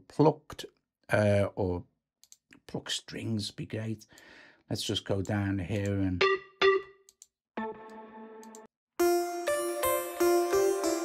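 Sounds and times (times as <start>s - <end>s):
synthesizer plucked note: 7.6s - 11.0s.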